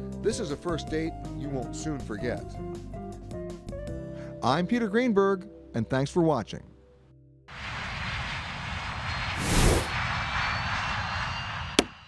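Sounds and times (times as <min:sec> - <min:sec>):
jet airliner taking off: 0:07.5 - 0:12.0.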